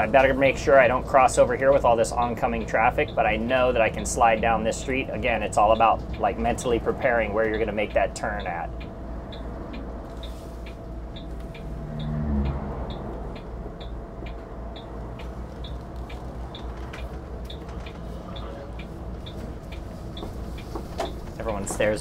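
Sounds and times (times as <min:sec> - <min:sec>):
engine and road rumble: 0:00.0 - 0:22.0
turn signal ticking: 0:00.0 - 0:22.0.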